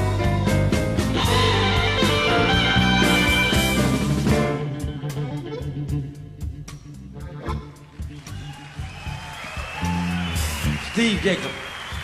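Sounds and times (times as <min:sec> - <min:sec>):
electric guitar notes: 0:00.0 - 0:06.6
bass guitar: 0:00.0 - 0:11.2.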